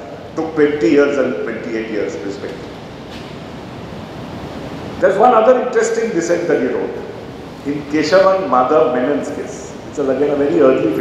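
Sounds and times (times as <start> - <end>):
large hall room tone: 0.0 - 11.0.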